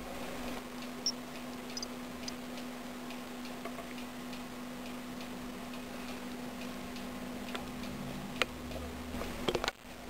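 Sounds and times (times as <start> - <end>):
steady low hum: 0.0 - 10.0
faint light ticking: 0.4 - 9.7.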